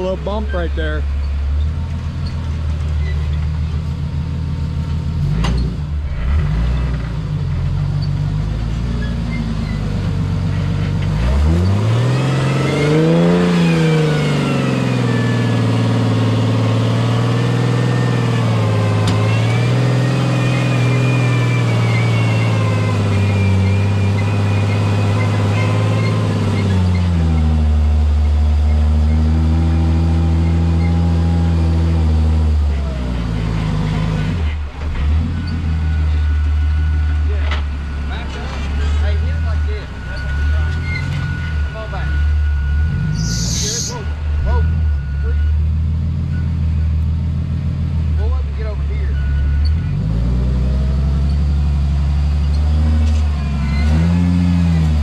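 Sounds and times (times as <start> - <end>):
engine running and revving: 0.0 - 55.0.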